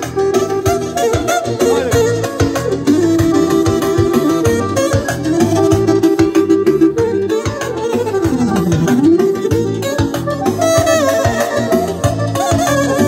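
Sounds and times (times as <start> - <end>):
clarinet: 0.0 - 13.0
electronic keyboard: 0.0 - 13.0
programmed beat: 0.0 - 13.0.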